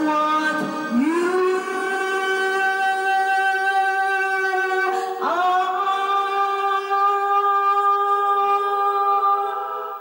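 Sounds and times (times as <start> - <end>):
woman singing karaoke: 0.0 - 10.0.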